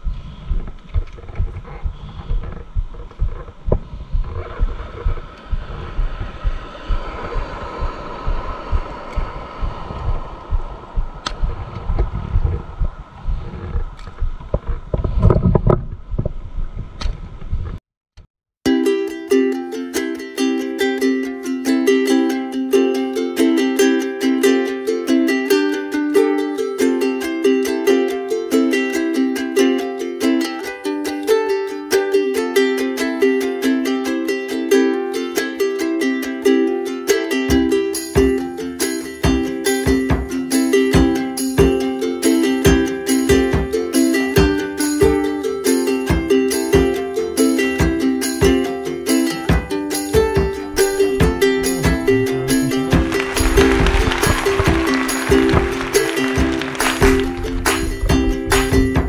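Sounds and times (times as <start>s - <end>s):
wind buffeting microphone: 0.0s - 17.8s, 49.7s - 59.0s
water: 3.3s - 16.9s, 51.8s - 58.9s
plucked strings music: 18.7s - 59.0s.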